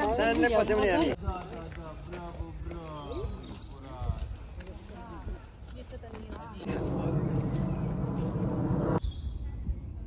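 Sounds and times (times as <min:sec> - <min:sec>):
distant people talking: 0:06.4 - 0:09.0.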